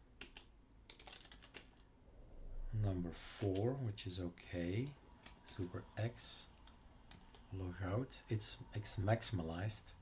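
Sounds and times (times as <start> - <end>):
computer keyboard keystrokes: 0.2 - 1.9.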